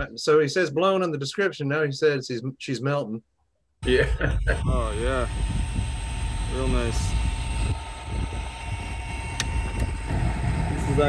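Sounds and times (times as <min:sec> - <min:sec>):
low steady rumble: 0:03.8 - 0:11.0.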